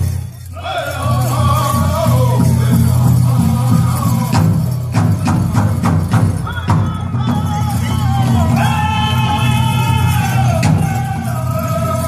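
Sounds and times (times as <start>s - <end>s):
high group singing: 0.4s - 12.0s
big drum beaten fast: 0.7s - 12.0s.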